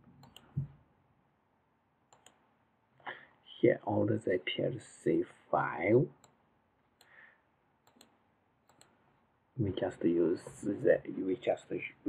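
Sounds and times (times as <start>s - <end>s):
computer mouse clicks: 0.2s - 0.7s, 2.1s - 2.4s, 7.8s - 9.0s.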